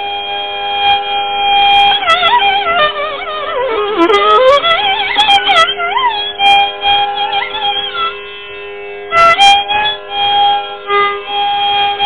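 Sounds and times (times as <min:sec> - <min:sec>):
tambura drone: 0:00.0 - 0:12.0.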